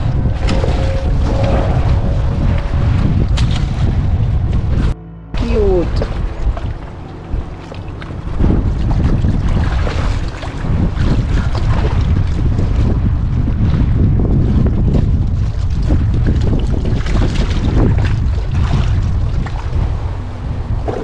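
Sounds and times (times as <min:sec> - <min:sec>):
sea water washing against rocks: 0:00.0 - 0:21.0
wind buffeting microphone: 0:00.0 - 0:21.0.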